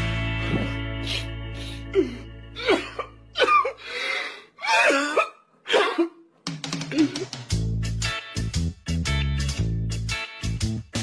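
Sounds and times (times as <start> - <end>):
guitar music: 0.0 - 3.4, 7.1 - 11.0.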